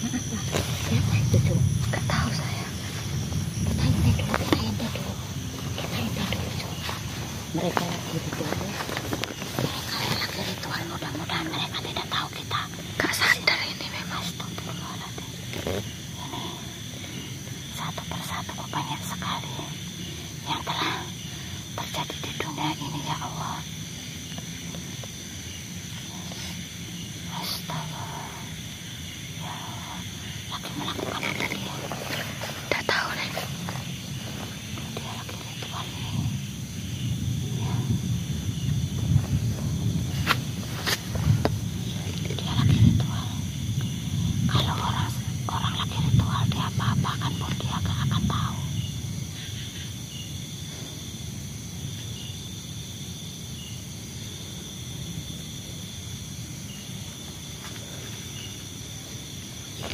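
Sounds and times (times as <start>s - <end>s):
leaves rustling: 0.0s - 11.8s, 29.5s - 44.4s
night insects chirring: 0.0s - 59.9s.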